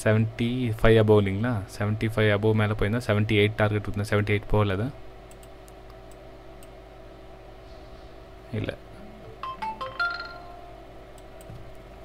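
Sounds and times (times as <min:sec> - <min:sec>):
computer mouse clicks: 0:05.3 - 0:06.8, 0:11.2 - 0:11.8
electronic chime: 0:09.4 - 0:10.8.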